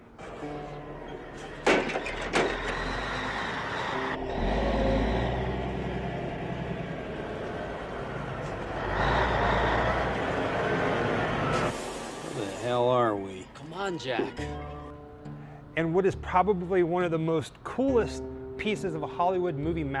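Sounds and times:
truck diesel engine rumbling: 1.4s - 11.7s.

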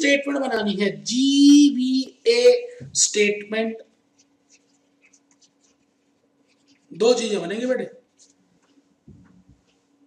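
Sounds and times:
faint steady hum: 0.0s - 10.0s
stylus scratching on tablet: 2.4s - 8.9s.

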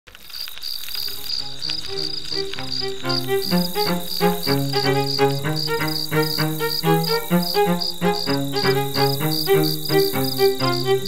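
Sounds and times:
crickets chirping: 0.1s - 11.0s
low held music notes: 1.1s - 11.0s.

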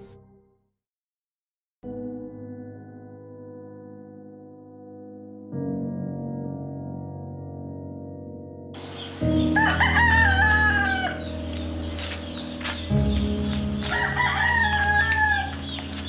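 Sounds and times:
background music: 0.0s - 0.5s, 1.8s - 16.0s
rooster crowing: 9.4s - 11.3s, 13.9s - 15.6s.

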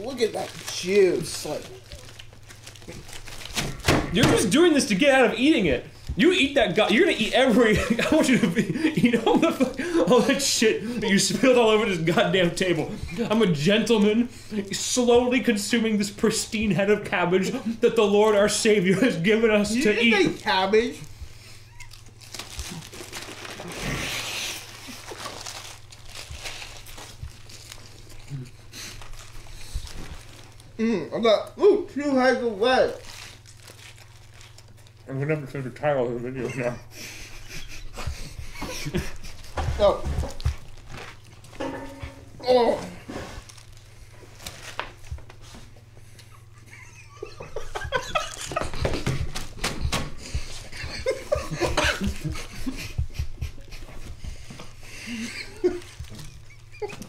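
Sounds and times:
crunching lettuce being chewed: 0.0s - 3.8s, 20.4s - 30.8s, 32.9s - 35.1s, 39.1s - 41.6s, 55.0s - 57.0s
man laughing with full mouth: 7.6s - 11.2s, 36.4s - 40.4s, 46.2s - 57.0s
lettuce crunching as chewed: 21.6s - 30.8s.

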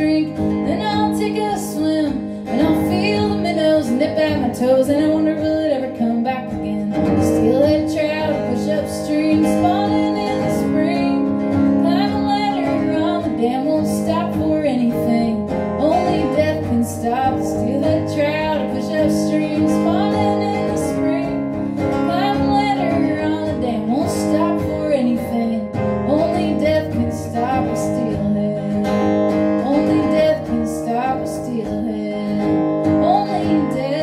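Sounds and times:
acoustic guitar strumming: 0.0s - 34.0s
woman singing folk song: 0.0s - 34.0s.

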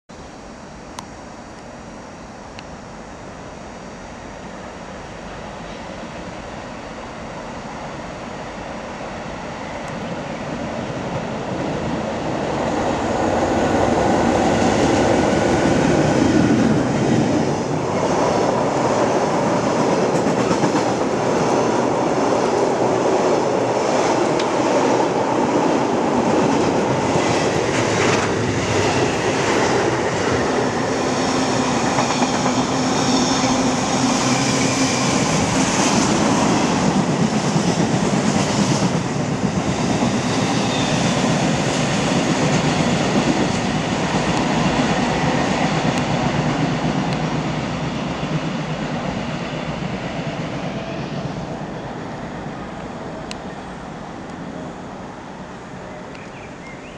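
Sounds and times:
freight train rumbling past: 2.4s - 56.9s.

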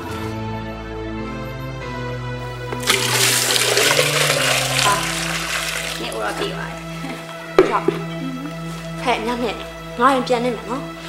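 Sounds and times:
soft background music: 0.0s - 11.0s
water pouring into clay pot: 2.6s - 7.0s.

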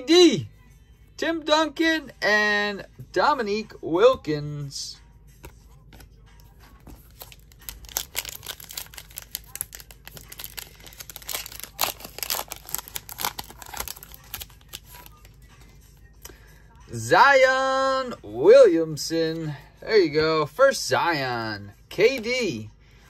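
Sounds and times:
foil pack tearing and crinkling: 7.0s - 15.1s.

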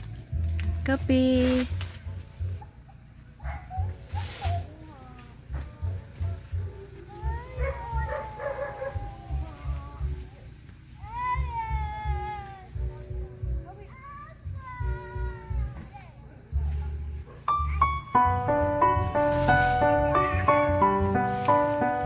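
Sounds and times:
animal crying: 7.1s - 10.2s.

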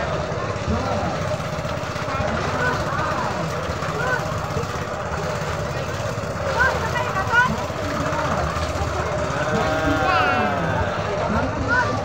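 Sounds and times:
children calling out: 9.0s - 11.2s.

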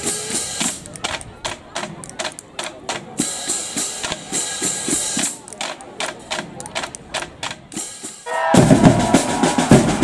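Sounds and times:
drumline sharp clicks: 0.0s - 10.0s.

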